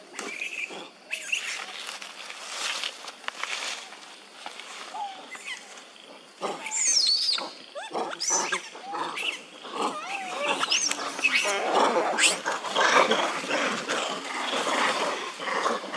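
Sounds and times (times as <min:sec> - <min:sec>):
macaques squealing and screaming: 0:00.2 - 0:01.7, 0:05.0 - 0:05.8, 0:06.6 - 0:15.3.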